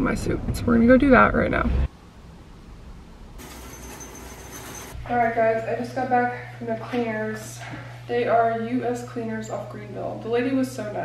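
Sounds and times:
thin high whine: 3.4 - 5.4.

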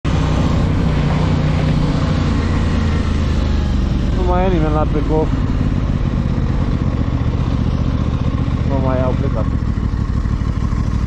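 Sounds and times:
motorcycle engine running: 0.1 - 11.0.

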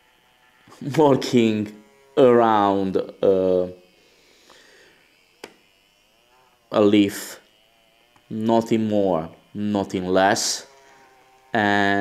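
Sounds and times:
small electric motor running: 0.0 - 12.0
sharp click: 5.4 - 5.6.

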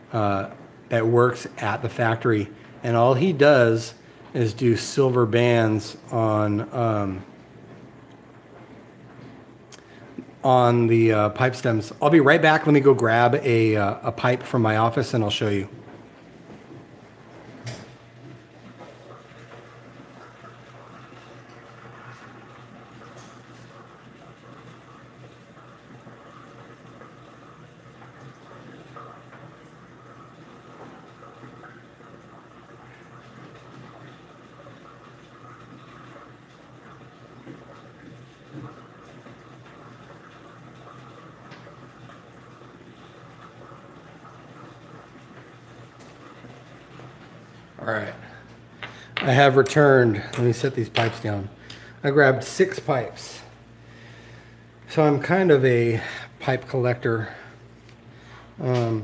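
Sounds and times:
faint room hum: 0.0 - 59.0.

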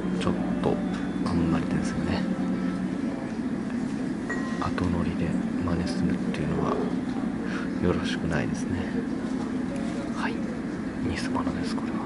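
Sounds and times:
faint voices: 0.0 - 12.0
low indoor hum: 0.0 - 12.0.

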